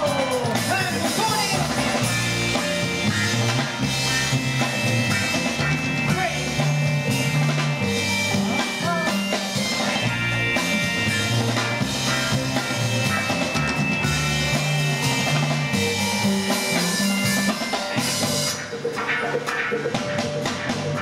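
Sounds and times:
bass line: 0:00.0 - 0:21.0
drum kit: 0:00.0 - 0:21.0
guitar: 0:00.0 - 0:21.0.

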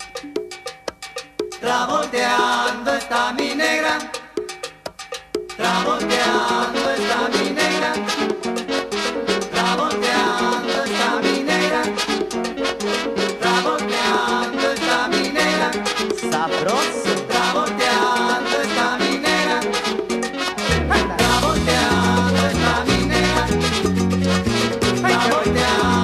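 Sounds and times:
fast percussion rhythm: 0:00.0 - 0:26.0
salsa band playing: 0:00.0 - 0:26.0
horns: 0:06.1 - 0:26.0.

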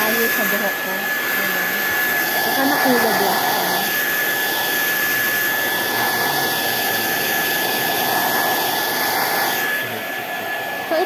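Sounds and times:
hair dryer running with whine: 0:00.0 - 0:11.0.

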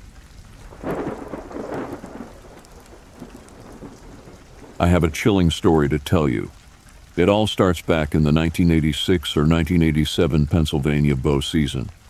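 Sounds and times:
steady rain: 0:00.0 - 0:12.0
thunder rolling: 0:00.7 - 0:06.6.

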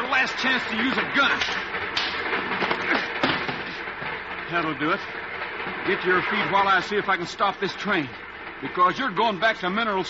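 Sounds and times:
train running noise: 0:00.0 - 0:10.0.

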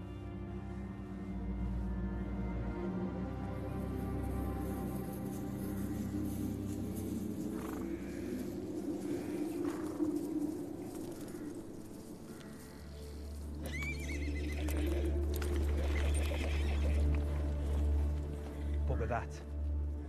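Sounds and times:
low steady music drone: 0:00.0 - 0:20.0
horses moving about: 0:03.6 - 0:19.9
horse whinnying: 0:13.6 - 0:17.2.

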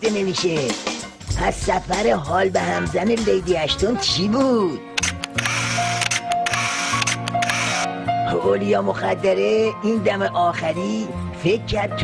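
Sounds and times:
background music with held notes: 0:00.0 - 0:12.0
camera shutter clicks: 0:05.0 - 0:07.9.

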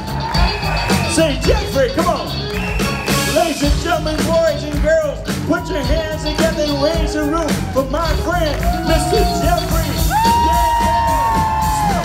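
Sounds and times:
audience cheering and whooping: 0:00.0 - 0:03.8, 0:05.3 - 0:12.0
live band playing: 0:00.0 - 0:12.0.

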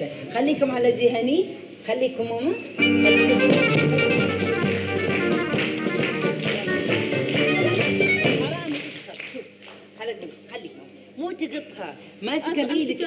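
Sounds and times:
lively music: 0:02.8 - 0:09.0.

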